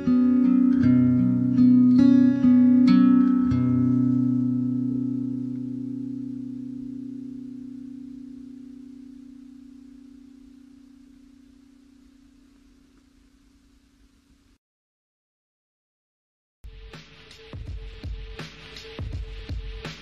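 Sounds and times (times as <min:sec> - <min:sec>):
guitar chord ringing: 0:00.0 - 0:14.3.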